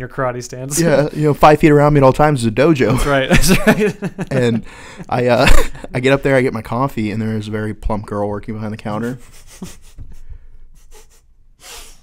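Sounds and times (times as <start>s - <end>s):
man laughing: 2.8s - 6.0s, 9.0s - 11.9s
man breathing: 4.6s - 5.1s, 10.0s - 12.0s.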